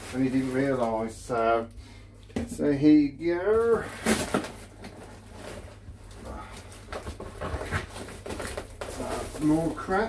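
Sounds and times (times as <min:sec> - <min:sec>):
packaging rustling and crinkling: 0:00.0 - 0:01.6, 0:03.4 - 0:10.0.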